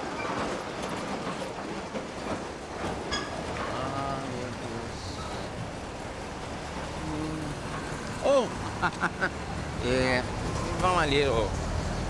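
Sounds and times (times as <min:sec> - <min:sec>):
streetcar wheels rolling on rails: 0:00.0 - 0:12.0.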